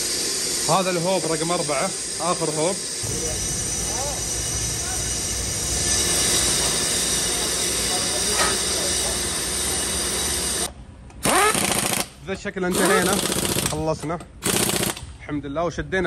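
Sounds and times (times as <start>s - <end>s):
brake lathe cutting tool scraping: 3.0s - 10.7s.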